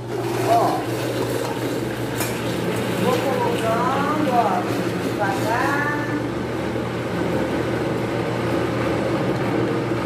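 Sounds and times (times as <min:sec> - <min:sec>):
blender grinding: 0:00.0 - 0:10.0.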